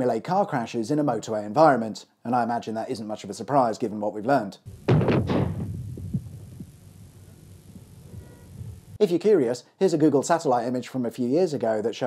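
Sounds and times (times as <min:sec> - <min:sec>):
low rumble: 0:04.7 - 0:09.0
loud explosion boom: 0:04.8 - 0:06.6.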